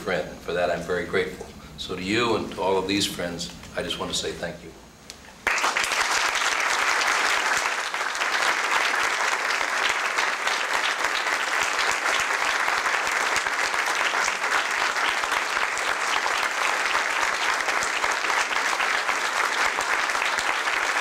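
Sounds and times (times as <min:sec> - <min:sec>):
people clapping: 0:05.4 - 0:21.0.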